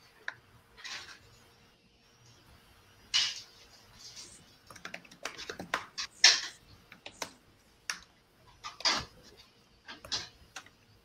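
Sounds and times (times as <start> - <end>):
typing on computer keyboard: 4.6 - 5.9.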